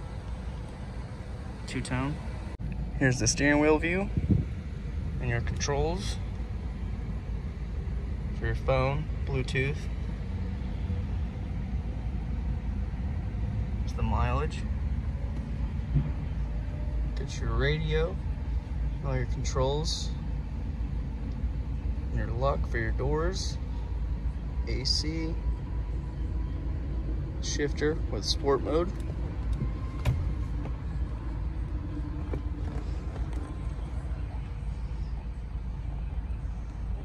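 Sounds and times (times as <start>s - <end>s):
car engine idling: 0.0s - 37.0s
short low thump: 15.8s - 16.4s.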